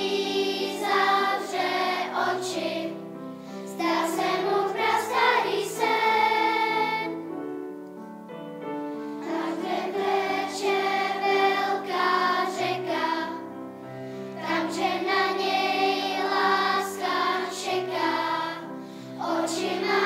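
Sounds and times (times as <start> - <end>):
children's choir singing: 0.0 - 7.4, 9.1 - 13.6, 14.2 - 20.0.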